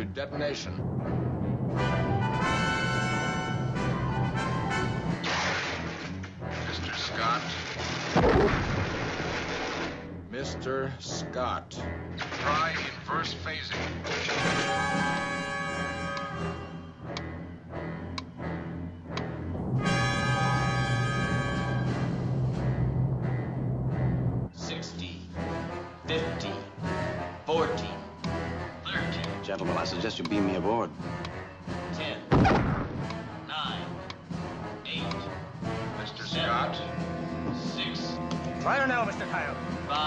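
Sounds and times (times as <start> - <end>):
tense orchestral music: 0.3 - 40.0
timpani: 0.8 - 6.0, 19.4 - 24.5, 32.3 - 34.8.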